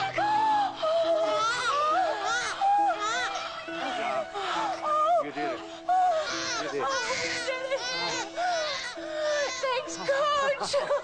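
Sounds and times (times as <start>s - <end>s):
newborn baby crying: 0.0s - 11.0s.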